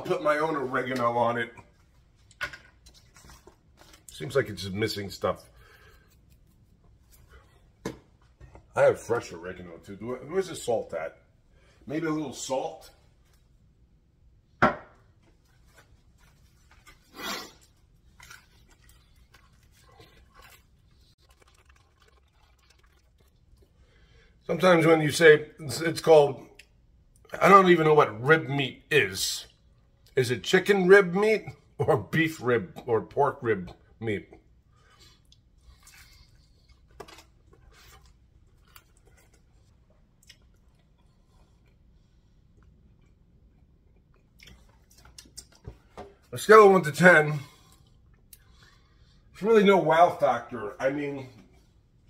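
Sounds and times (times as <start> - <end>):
crunching and chewing pizza crust: 16.0 - 23.7, 34.9 - 45.6.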